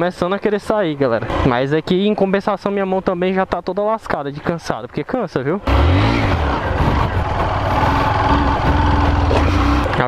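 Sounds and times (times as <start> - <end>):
motorcycle engine running loudly: 1.2 - 1.8, 5.6 - 10.0.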